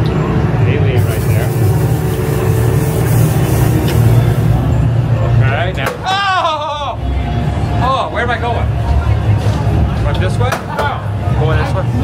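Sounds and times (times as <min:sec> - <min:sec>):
low rumbling drone: 0:00.0 - 0:05.8
hiss: 0:01.0 - 0:04.7.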